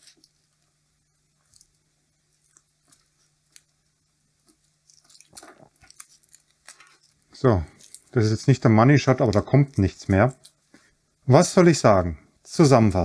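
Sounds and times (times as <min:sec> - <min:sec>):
tape crinkling as it is peeled: 0:00.0 - 0:10.9.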